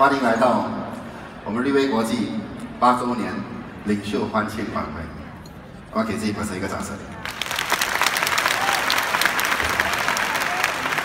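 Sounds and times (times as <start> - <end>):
large audience applauding: 7.2 - 11.0.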